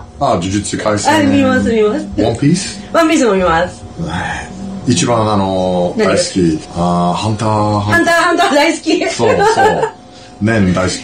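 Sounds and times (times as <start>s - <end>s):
drawn-out held vowels: 1.1s - 5.4s
people talking and chuckling: 9.0s - 10.0s.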